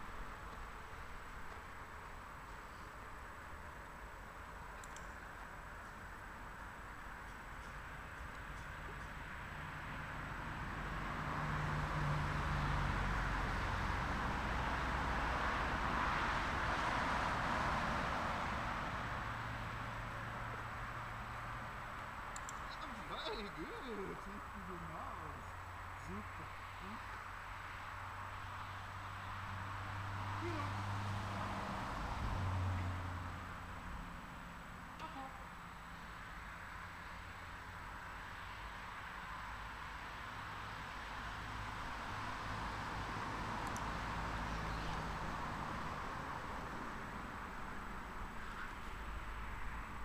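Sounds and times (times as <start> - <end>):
distant vehicle passing by: 0.0 - 50.0
outdoor rumble and hiss: 0.0 - 50.0.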